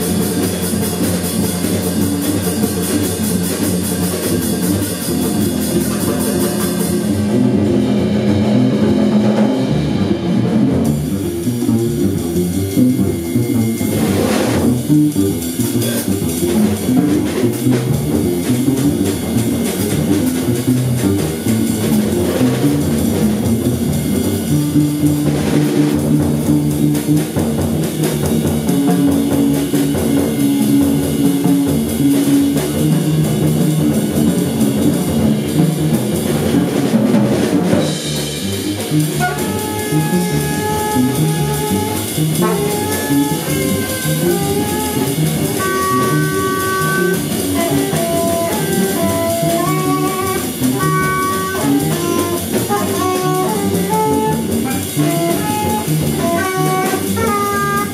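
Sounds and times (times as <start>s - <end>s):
double bass notes: 0.0s - 57.9s
drum kit with cymbals: 0.0s - 57.9s.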